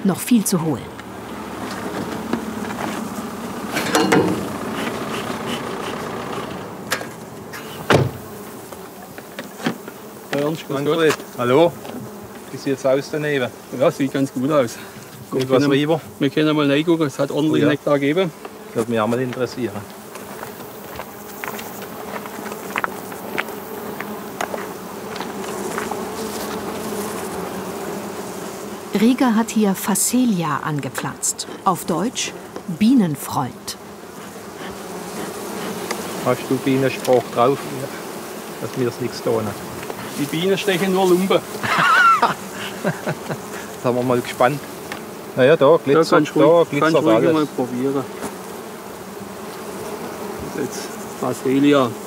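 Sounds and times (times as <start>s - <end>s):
bees buzzing: 0.0s - 52.0s.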